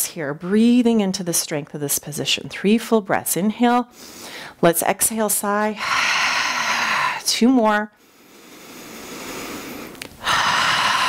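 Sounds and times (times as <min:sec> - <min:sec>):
woman breathing deeply: 0:03.9 - 0:04.6, 0:05.8 - 0:07.3, 0:08.0 - 0:11.0.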